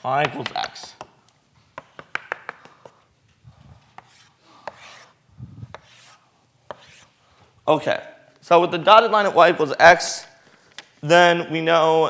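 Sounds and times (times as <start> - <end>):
chalk tapping on blackboard: 1.7 - 3.1, 3.9 - 5.1, 5.7 - 7.1
chalk scraping on blackboard: 3.8 - 7.2.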